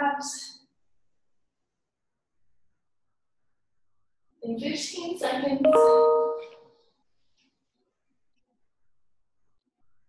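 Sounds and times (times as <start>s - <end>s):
chime ringing: 5.7s - 6.6s.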